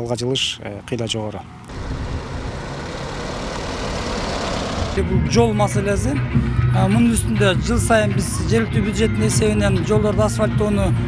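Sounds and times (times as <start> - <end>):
car driving past on asphalt: 1.7 - 5.3.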